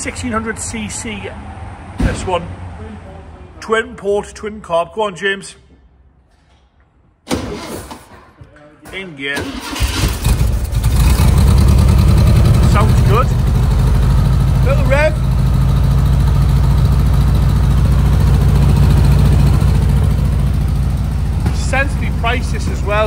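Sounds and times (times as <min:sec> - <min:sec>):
car engine idling: 0:09.4 - 0:23.0.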